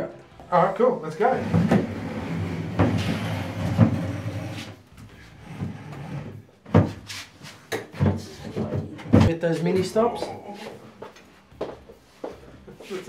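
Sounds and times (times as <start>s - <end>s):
wooden cabinet knocks and bumps: 1.4s - 4.3s, 6.6s - 7.1s, 7.7s - 10.4s.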